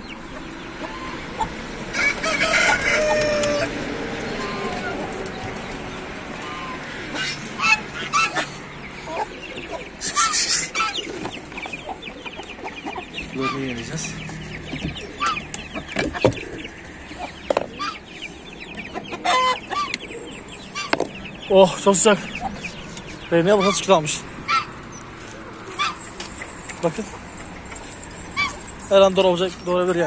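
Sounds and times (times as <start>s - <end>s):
loud hen calls: 0.0s - 25.0s, 25.6s - 26.1s, 28.2s - 28.7s
chickens clucking: 0.0s - 30.0s
chicks peeping rapidly: 0.0s - 30.0s.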